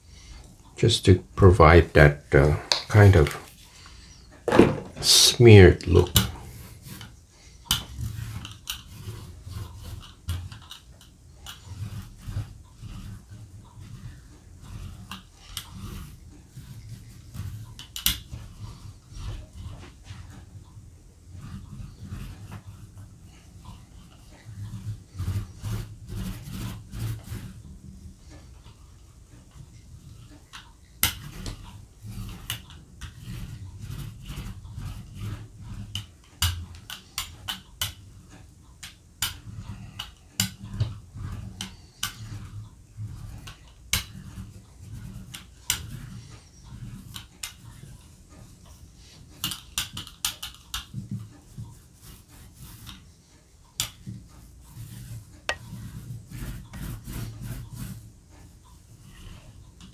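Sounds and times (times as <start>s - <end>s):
squeegee scraping paint on plastic: 0.0s - 59.9s.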